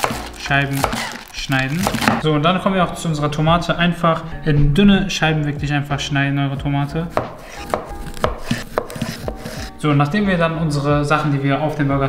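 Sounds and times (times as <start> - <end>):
knife slicing tomato: 0.0 - 2.2, 7.1 - 9.7
blade knocking on wooden board: 7.2 - 9.7.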